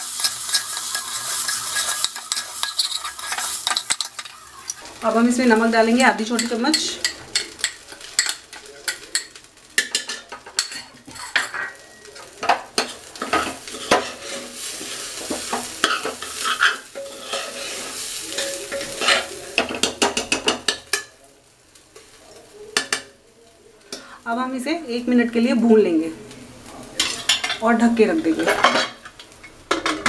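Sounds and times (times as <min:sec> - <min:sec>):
metal spoon scraping a pan: 0:00.0 - 0:21.1, 0:27.0 - 0:30.0
rice sizzling in hot fat: 0:00.0 - 0:30.0.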